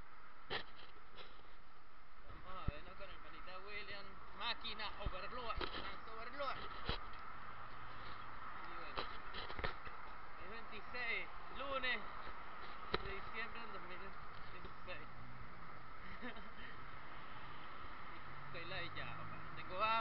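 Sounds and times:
street traffic: 0:00.0 - 0:20.0.

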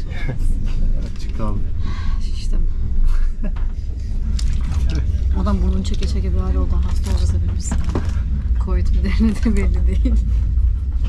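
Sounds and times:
train carriage rumble: 0:00.0 - 0:11.0.

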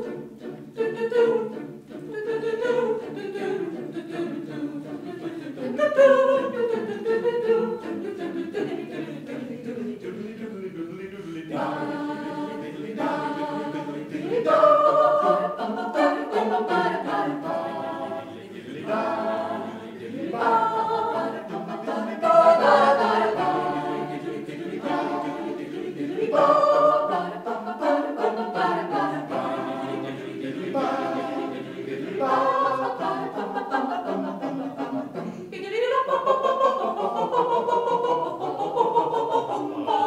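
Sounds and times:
choir singing a cappella: 0:00.0 - 0:40.0.

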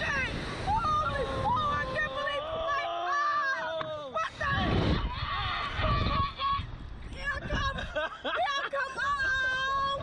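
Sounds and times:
wind rumbling on microphone: 0:00.0 - 0:02.9, 0:03.8 - 0:10.0
people screaming and laughing: 0:04.8 - 0:06.7.

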